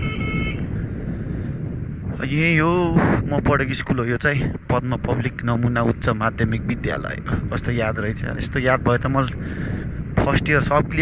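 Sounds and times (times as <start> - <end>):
horn beep: 0.0 - 0.7.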